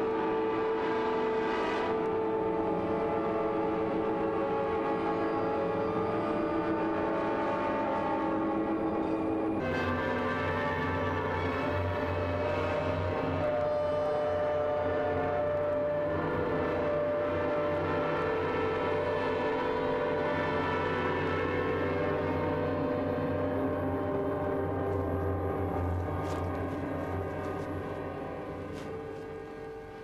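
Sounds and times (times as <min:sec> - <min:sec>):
ambient drone music: 0:00.0 - 0:30.0.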